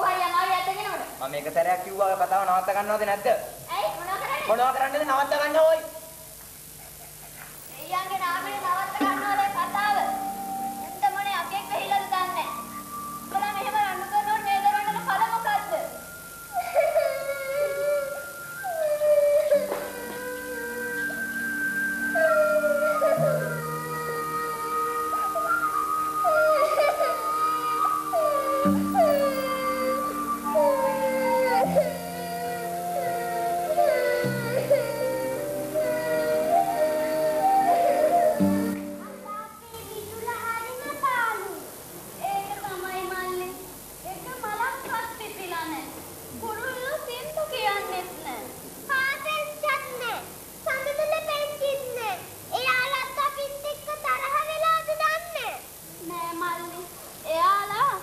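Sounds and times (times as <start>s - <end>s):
background music: 8.8s - 39.6s
child's high-pitched voice: 10.9s - 12.6s, 26.4s - 37.2s, 39.0s - 58.0s
long howl sliding down in pitch: 16.2s - 39.0s.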